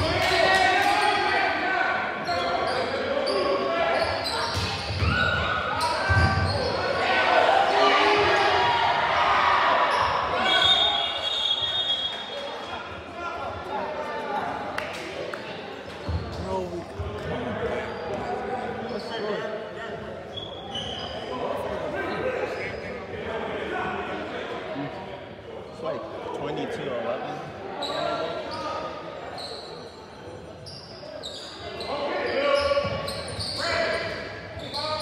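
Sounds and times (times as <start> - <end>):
crowd and players calling out: 0.0 - 35.0.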